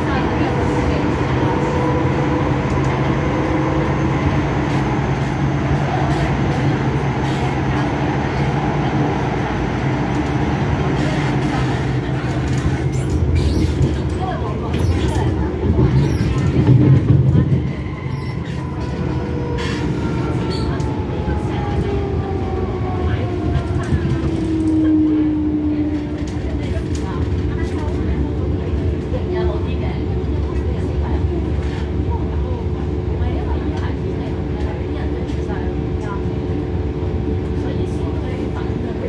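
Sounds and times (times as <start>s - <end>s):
train wheels rumbling: 0.0s - 39.0s.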